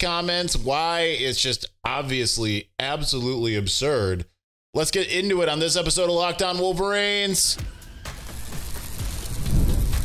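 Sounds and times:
noisy rush with deep rumble: 8.5 - 10.0.

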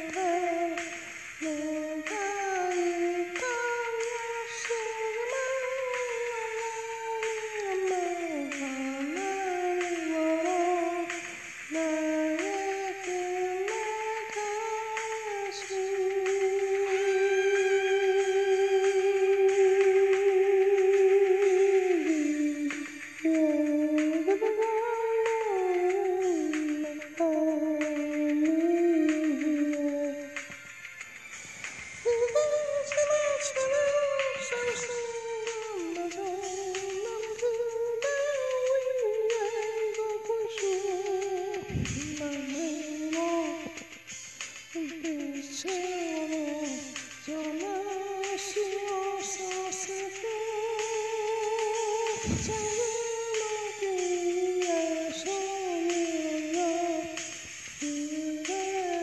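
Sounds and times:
person singing a long note: 0.0 - 30.5, 32.0 - 43.8, 44.8 - 57.2, 57.8 - 59.0
karaoke ballad melody: 0.0 - 59.0
soft musical accompaniment: 0.0 - 59.0.

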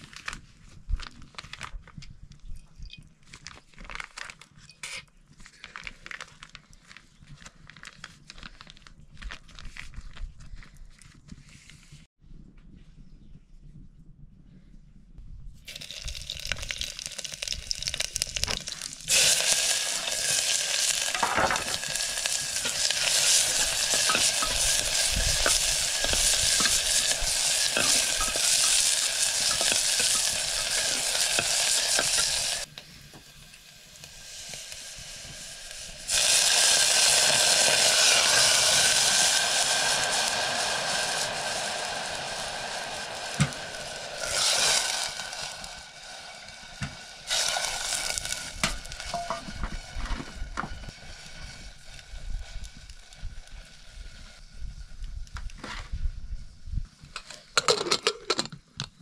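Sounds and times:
onions sizzling in hot oil: 15.7 - 55.2.

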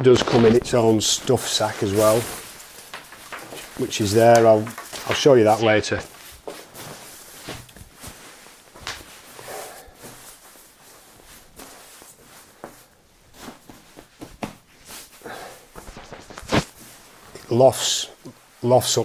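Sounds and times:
sleeping bag fabric rustling: 0.2 - 19.0.

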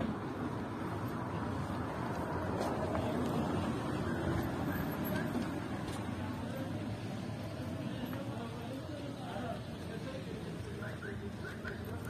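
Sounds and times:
street noise low rumble: 0.0 - 12.0.

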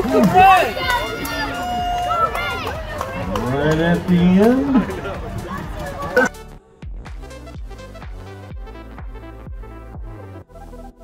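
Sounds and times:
race announcer calling: 0.0 - 6.3
people's voices: 0.0 - 6.4.

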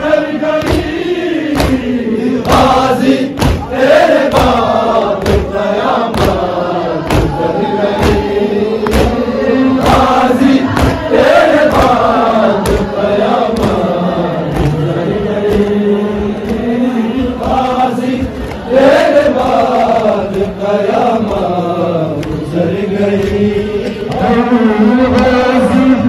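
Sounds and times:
crowd of men chanting: 0.0 - 26.0.

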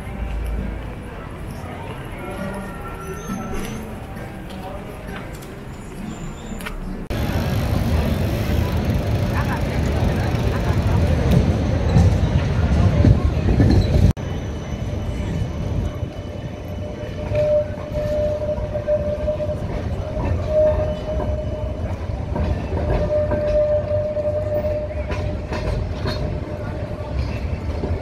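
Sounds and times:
street noise: 0.0 - 28.0
tram high whine: 0.0 - 28.0
tram wheels rumbling on rails: 0.0 - 28.0.

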